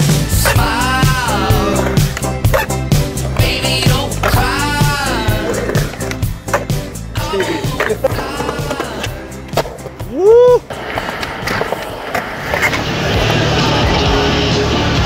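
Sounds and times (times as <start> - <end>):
background music: 0.0 - 15.0
skateboard wheels rolling on concrete: 0.0 - 15.0
skateboard clacks: 1.7 - 14.1.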